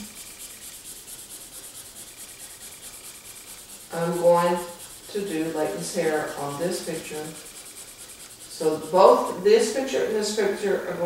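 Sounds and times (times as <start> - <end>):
highlighter scratching on paper: 0.0 - 11.0.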